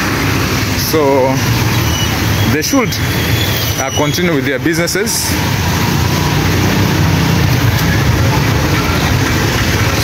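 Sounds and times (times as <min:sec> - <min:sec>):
vehicle engines passing: 0:00.0 - 0:10.0.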